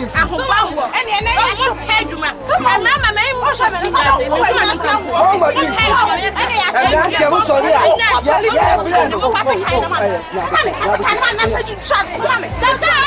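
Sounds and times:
voices talking: 0.0s - 13.0s.

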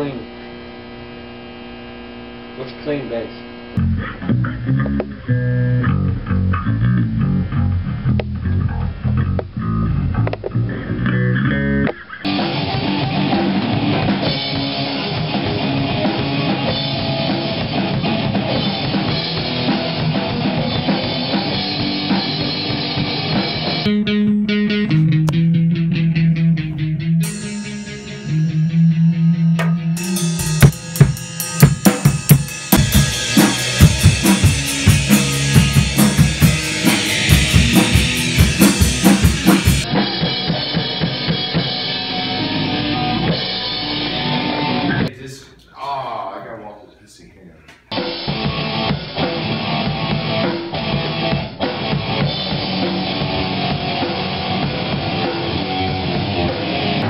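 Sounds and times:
distorted rock band playing: 0.0s - 45.2s, 47.8s - 57.0s
guitar strumming one chord: 12.3s - 45.1s
fast kick drum beat: 29.6s - 39.8s.

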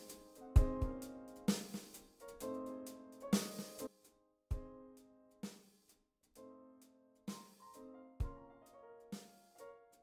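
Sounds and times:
drum-kit beat: 0.0s - 6.4s, 7.3s - 8.4s.

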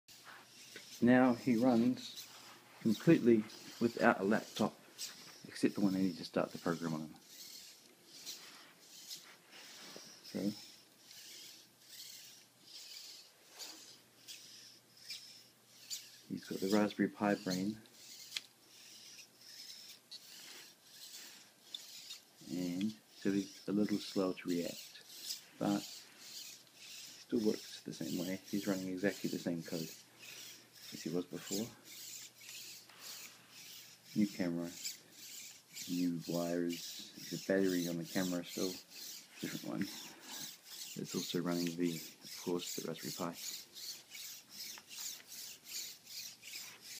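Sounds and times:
robot servos whirring: 0.1s - 46.9s.

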